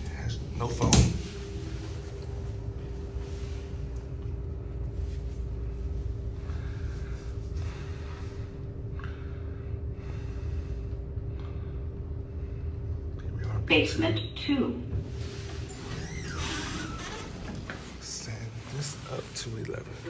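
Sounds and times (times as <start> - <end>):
steady humming tones: 0.0 - 20.0.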